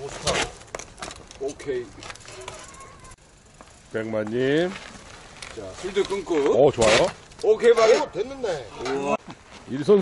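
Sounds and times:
faint voices of riders: 1.4 - 9.2.

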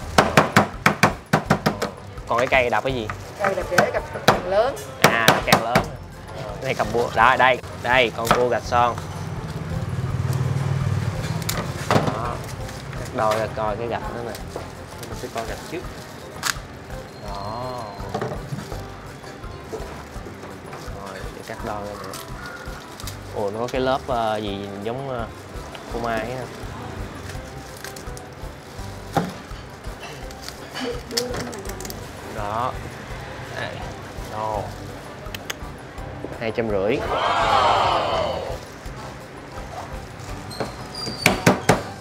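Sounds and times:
knocking on wooden cutting board: 0.2 - 2.0, 3.7 - 5.9.

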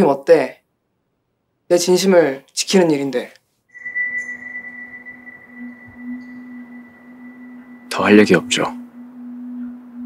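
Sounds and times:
faint high steady tone: 3.7 - 10.0
low held synth note: 3.8 - 10.0.

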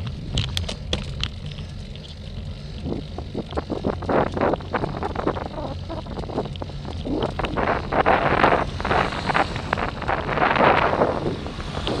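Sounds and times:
steady low rumble: 0.0 - 12.0
wind buffeting microphone: 0.0 - 12.0.

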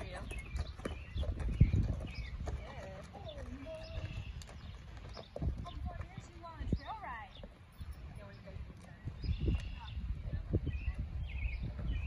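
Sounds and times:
horse hooves on dirt: 0.0 - 12.0.

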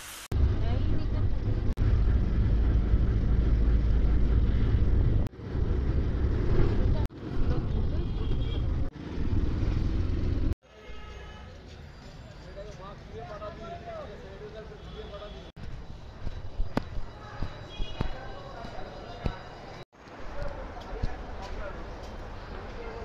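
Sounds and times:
vehicle noise: 0.3 - 10.6.

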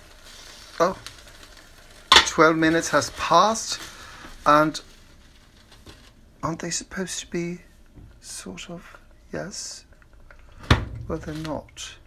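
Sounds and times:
pot simmering with bubbling hiss: 0.0 - 12.0.

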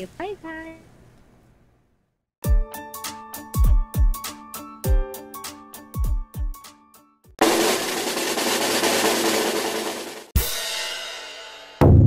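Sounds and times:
snare drum roll: 7.4 - 11.0.

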